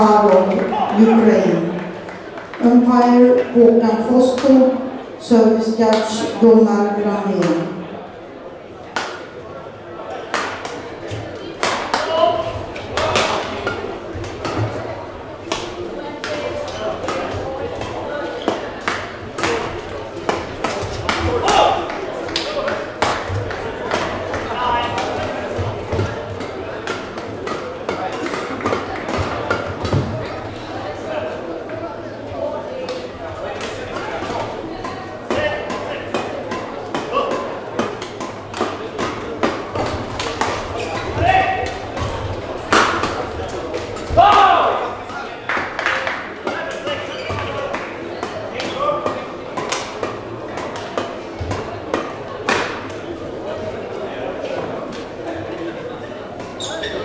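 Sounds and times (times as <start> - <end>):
racket hitting shuttlecock: 8.9 - 9.3, 10.2 - 10.9, 11.6 - 14.9, 15.5 - 30.2, 32.9 - 53.1.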